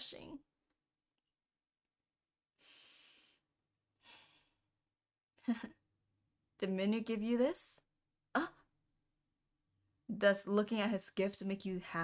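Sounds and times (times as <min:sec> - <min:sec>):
faint breathing: 0:02.6 - 0:04.7.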